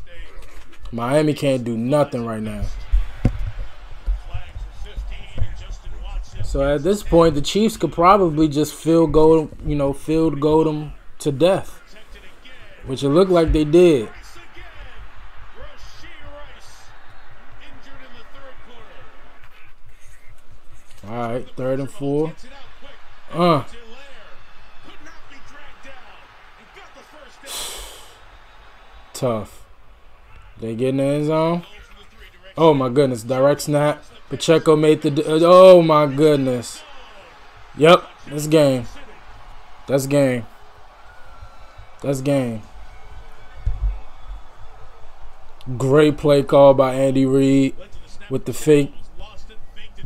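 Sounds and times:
faint football commentary: 0:00.0 - 0:50.0
breathy burst of noise: 0:27.4 - 0:28.2.

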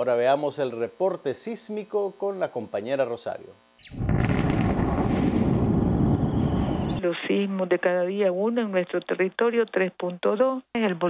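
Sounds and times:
earthquake rumble sound effect: 0:04.0 - 0:07.0.

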